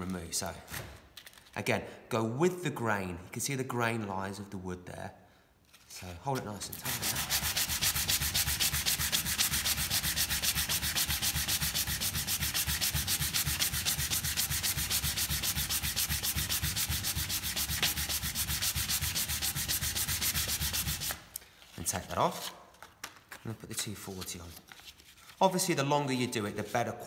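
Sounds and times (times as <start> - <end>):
sanding block rubbing wood: 6.7 - 21.2.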